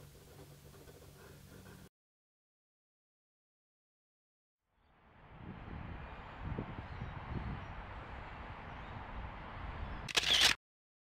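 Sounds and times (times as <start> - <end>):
camera shutter click: 10.1 - 10.6.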